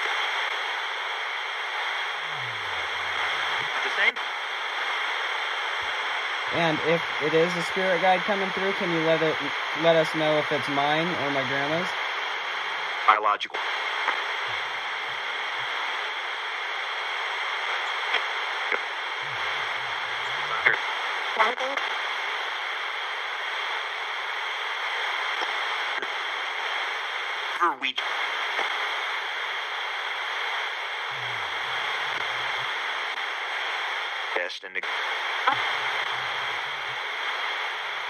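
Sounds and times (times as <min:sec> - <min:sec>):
fragments of radio station audio: 0:00.0 - 0:38.0
radio static hiss: 0:00.0 - 0:38.0.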